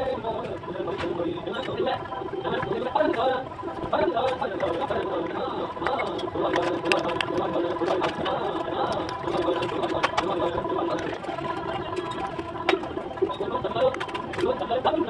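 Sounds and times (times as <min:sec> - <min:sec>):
men talking: 0:00.0 - 0:12.3, 0:13.2 - 0:15.0.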